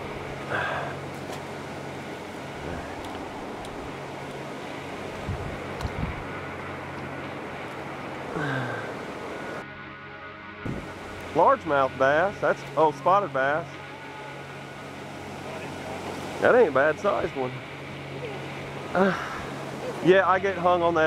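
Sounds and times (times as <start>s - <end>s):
river water rushing: 0.0s - 9.6s, 10.6s - 21.0s.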